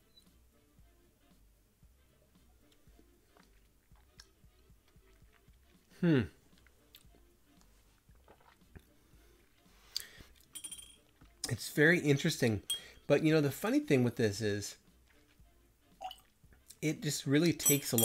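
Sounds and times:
person humming hmm: 5.9 - 6.4
wet mouth smacks: 6.5 - 8.9.

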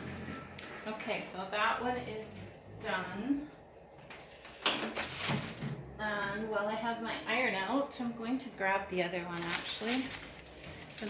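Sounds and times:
scraping rustling noise: 9.4 - 11.0.

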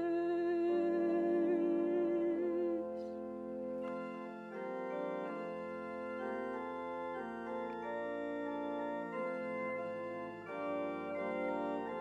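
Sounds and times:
organ chords: 0.0 - 12.0.

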